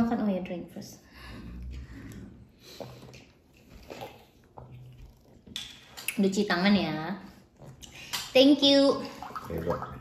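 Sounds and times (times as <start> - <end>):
person drinking water: 1.4 - 5.5.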